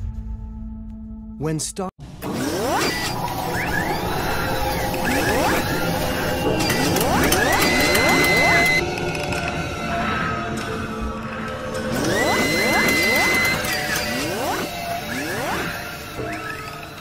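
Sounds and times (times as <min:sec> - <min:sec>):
music with mechanical effects: 0:02.0 - 0:17.0
rising sweeps: 0:02.2 - 0:16.8
steady high tone: 0:03.0 - 0:09.1, 0:11.8 - 0:16.2.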